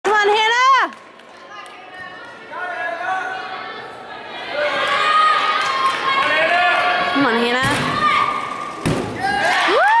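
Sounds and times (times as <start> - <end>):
crowd cheering: 4.3 - 7.4, 8.0 - 10.0.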